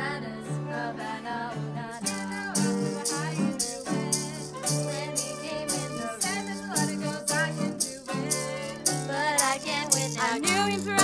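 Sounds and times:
strummed bouzouki: 0:00.0 - 0:11.0
violin melody with vibrato: 0:00.0 - 0:11.0
shaker keeping a beat: 0:02.0 - 0:11.0.

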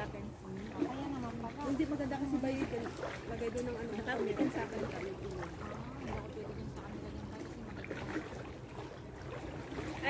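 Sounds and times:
outdoor background rumble: 0:00.0 - 0:10.0
soft low voices talking: 0:00.0 - 0:10.0.

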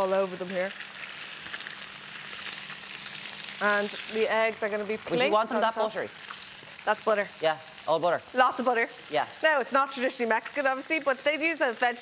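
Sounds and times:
butter sizzling in a frying pan: 0:00.0 - 0:12.0.

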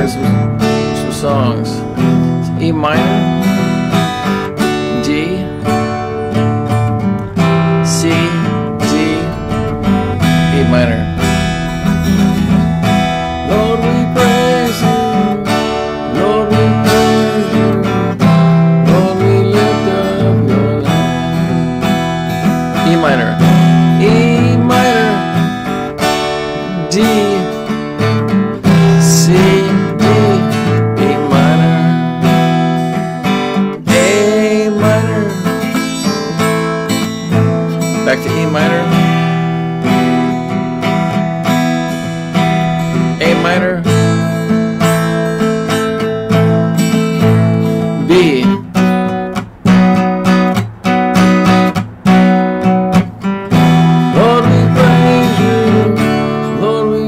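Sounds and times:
acoustic guitar strumming chords: 0:00.0 - 0:57.0.

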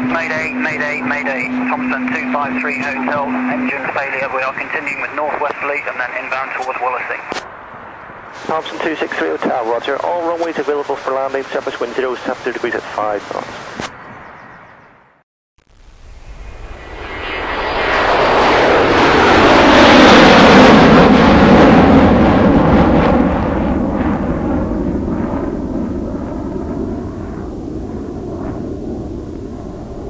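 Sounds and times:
airplane engines passing: 0:00.0 - 0:15.0, 0:15.8 - 0:30.0.

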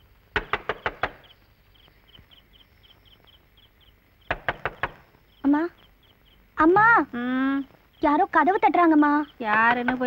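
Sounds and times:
crickets chirping: 0:00.0 - 0:10.0
knocking on door: 0:00.4 - 0:01.3, 0:04.3 - 0:05.0, 0:09.4 - 0:10.0.

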